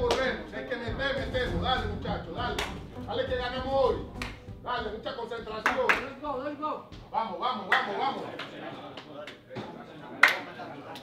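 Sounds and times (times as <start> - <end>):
sharp hand claps: 0.0 - 0.4, 2.5 - 2.9, 4.1 - 4.5, 5.6 - 6.2, 7.7 - 9.4, 10.2 - 11.0
background music: 0.0 - 7.2
men's voices: 0.0 - 11.0.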